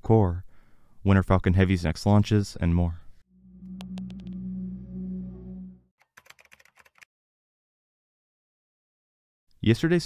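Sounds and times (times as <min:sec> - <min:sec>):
low electronic drone: 0:03.3 - 0:05.9
keyboard typing clicks: 0:03.8 - 0:04.4, 0:06.0 - 0:07.1.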